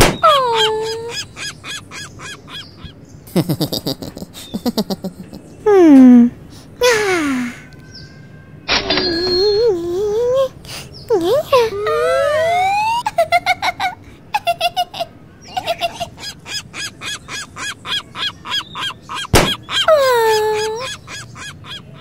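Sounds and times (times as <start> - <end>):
cartoon rising glide: 11.9 - 13.1
cartoon bird honking chirps: 15.8 - 22.0.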